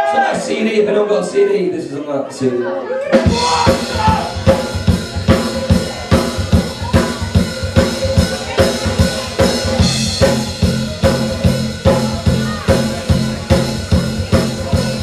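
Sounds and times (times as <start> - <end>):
drum kit beat: 3.1 - 15.0
electric bass guitar: 3.2 - 15.0.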